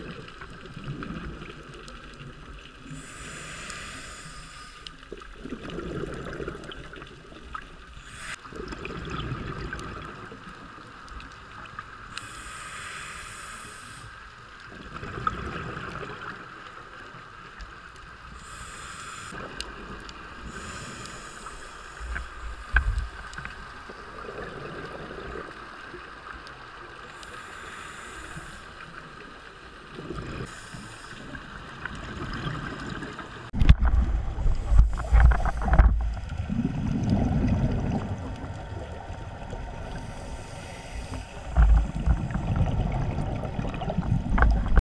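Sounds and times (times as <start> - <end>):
exhaled bubbles rumbling underwater: 0.0 - 4.3, 4.9 - 12.2, 14.6 - 18.7, 19.3 - 44.8
faint steady whine: 2.8 - 5.1
regulator hissing inhalations: 2.9 - 4.9, 8.0 - 8.5, 12.1 - 14.2, 18.3 - 19.4, 20.4 - 23.3, 27.1 - 28.8, 30.4 - 31.4, 39.9 - 42.0.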